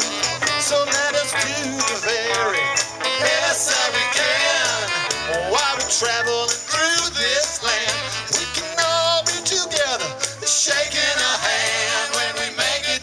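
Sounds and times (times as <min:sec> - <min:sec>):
man singing: 0:00.0 - 0:11.0
electric bass: 0:00.0 - 0:12.1.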